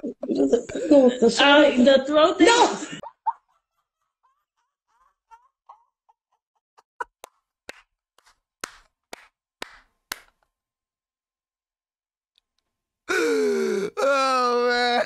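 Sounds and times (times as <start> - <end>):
man laughing with wheezes: 3.0 - 7.2
hands clapping: 7.0 - 10.5.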